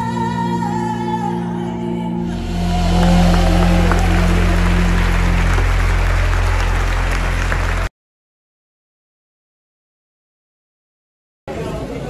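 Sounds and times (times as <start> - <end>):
deep sustained bass: 1.9 - 7.9
worship band holding a chord: 2.1 - 7.9
congregation applauding: 2.3 - 7.9.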